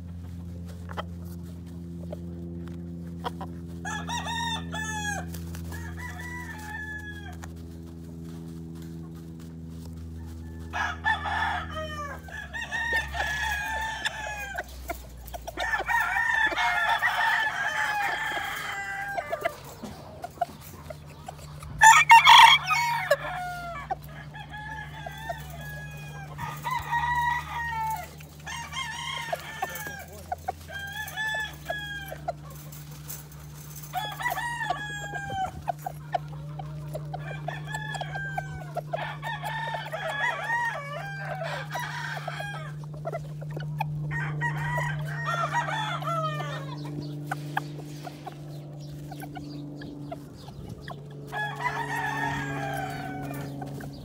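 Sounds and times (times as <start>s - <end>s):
roosters crowing and clucking: 0.0s - 54.0s.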